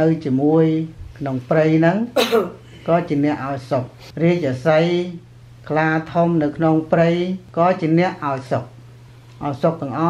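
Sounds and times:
man preaching: 0:00.0 - 0:08.7
throat clearing: 0:02.2 - 0:02.9.

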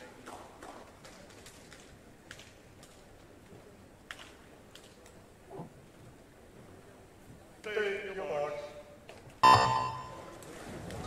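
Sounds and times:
electronic start beep: 0:09.4 - 0:10.2.

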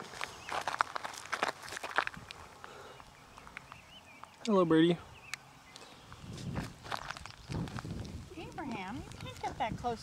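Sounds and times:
footsteps crunching on gravel: 0:00.0 - 0:04.3, 0:05.7 - 0:09.6.

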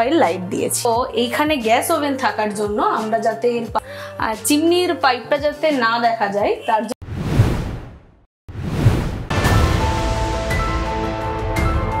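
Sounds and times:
whoosh sound effects: 0:07.0 - 0:09.4.

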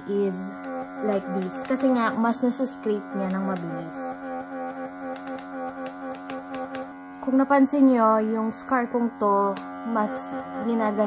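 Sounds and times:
small motor buzzing: 0:00.0 - 0:11.0.

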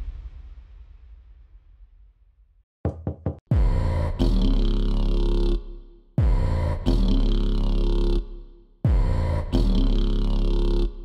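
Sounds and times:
quick knocks: 0:02.9 - 0:03.4.

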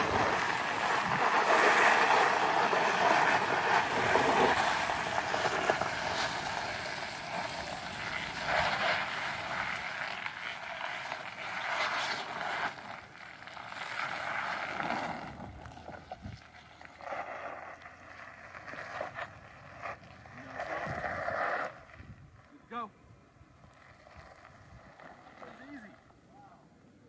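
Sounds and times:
suv driving over rock and dirt: 0:00.0 - 0:21.9.

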